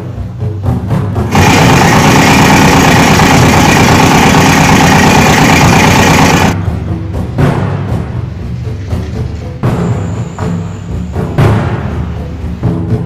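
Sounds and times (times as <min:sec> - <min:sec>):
loud steady motor: 0:01.3 - 0:06.6.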